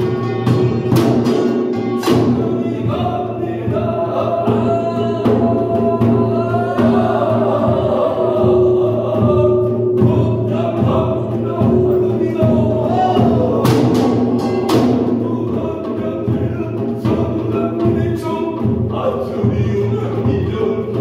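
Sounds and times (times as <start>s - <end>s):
barrel drum strokes: 0.0s - 21.0s
voices chanting melismatically: 1.0s - 21.0s.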